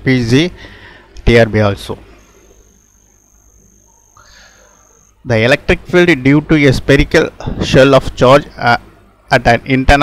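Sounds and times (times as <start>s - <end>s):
faint low hum: 0.0s - 10.0s
high-pitched whine: 1.4s - 5.9s.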